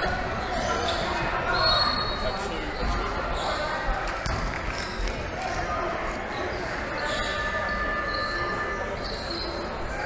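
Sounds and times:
murmur of voices in echoing hall: 0.0 - 10.0.

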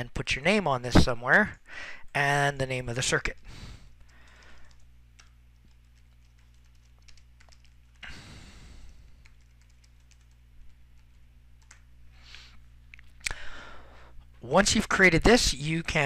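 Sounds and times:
steady low hum: 0.0 - 16.0
keyboard typing: 3.3 - 8.1, 8.8 - 11.9.

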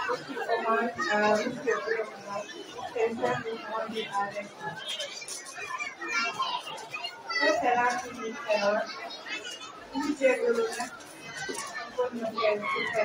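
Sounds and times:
woman speaking into a microphone: 0.0 - 4.6, 7.4 - 8.8, 10.0 - 10.9, 12.0 - 13.0
children chattering: 0.0 - 13.0.

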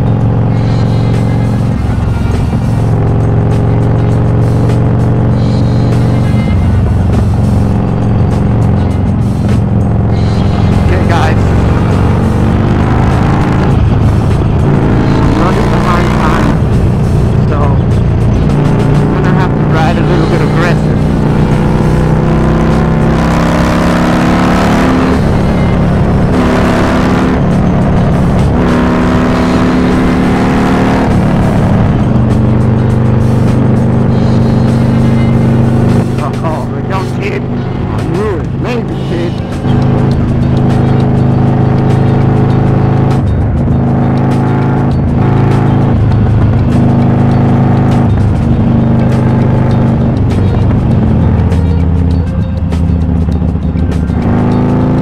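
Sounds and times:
motorcycle engine cruising: 0.0 - 55.0.

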